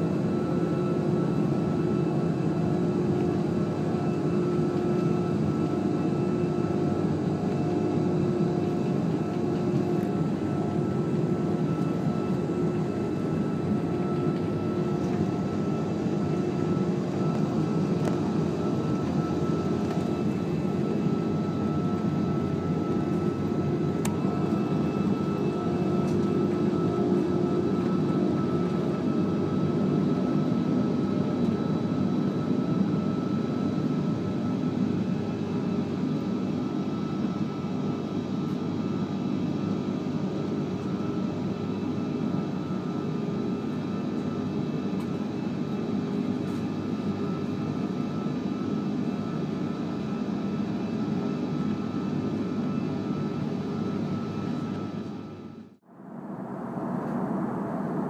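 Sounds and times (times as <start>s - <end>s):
jet engines rumbling: 0.0s - 58.0s
faint steady whine: 0.1s - 34.7s, 35.5s - 58.0s
rushing air: 55.9s - 58.0s.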